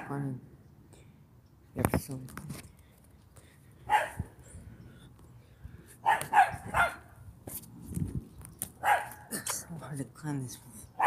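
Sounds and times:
dog barking: 0:03.9 - 0:04.2, 0:06.0 - 0:07.1, 0:08.8 - 0:09.3.

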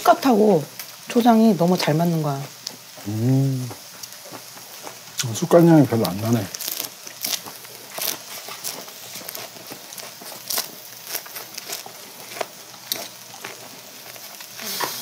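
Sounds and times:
crackles and pops: 0:00.0 - 0:15.0
meat sizzling on a grill: 0:00.0 - 0:15.0.

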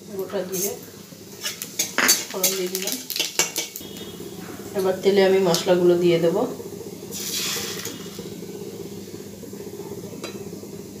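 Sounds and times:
metal spatula scraping a pan: 0:01.4 - 0:03.8.

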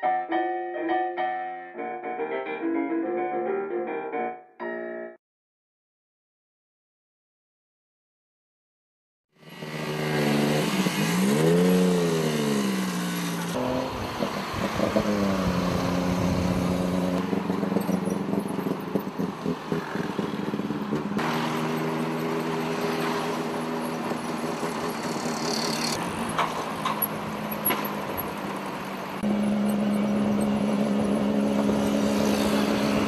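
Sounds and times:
auto rickshaw engine revving: 0:09.4 - 0:33.0
road noise: 0:09.4 - 0:33.0
wind noise: 0:13.8 - 0:16.9.

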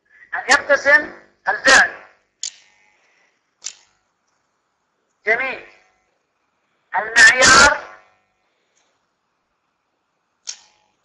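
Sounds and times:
person speaking: 0:00.2 - 0:02.1, 0:05.2 - 0:05.8, 0:06.9 - 0:08.0
short clicks: 0:02.4 - 0:02.9, 0:03.6 - 0:04.4, 0:10.4 - 0:10.9.

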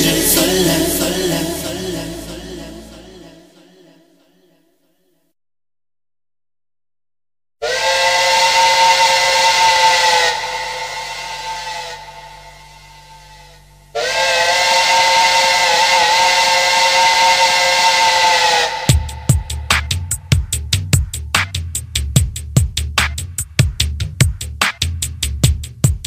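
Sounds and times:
drum machine beat: 0:00.0 - 0:02.8, 0:18.9 - 0:26.0
long held synth chord: 0:00.0 - 0:03.7, 0:08.4 - 0:16.4.

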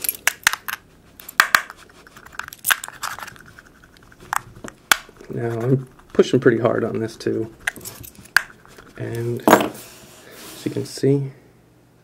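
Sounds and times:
keys rasping scrape: 0:07.2 - 0:10.0.

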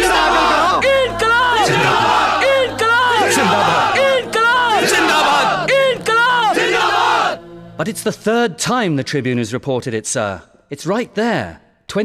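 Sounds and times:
crowd of men shouting in unison: 0:00.0 - 0:07.4.

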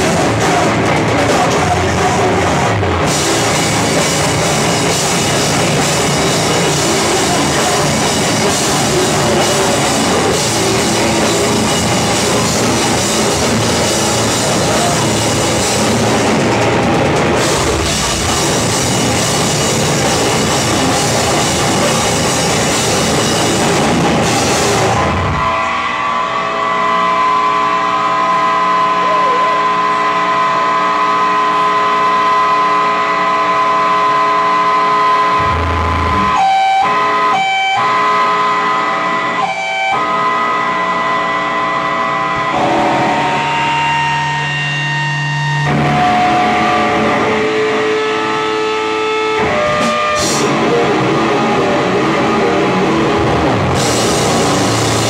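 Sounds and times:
distorted guitars: 0:00.0 - 0:55.0
drums: 0:00.0 - 0:55.0
held bass notes: 0:00.0 - 0:55.0.

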